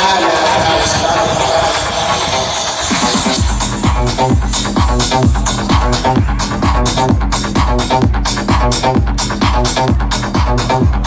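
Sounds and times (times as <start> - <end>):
electronic dance music synth: 0.0 - 11.0
deep kick-drum thumps: 2.9 - 11.0.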